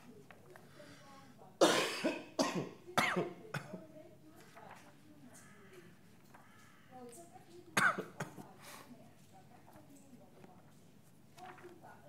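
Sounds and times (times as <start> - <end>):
person coughing: 1.6 - 3.8.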